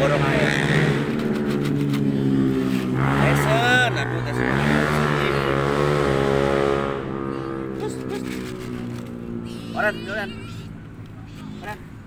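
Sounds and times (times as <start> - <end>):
motor vehicle engine running: 0.0 - 12.0.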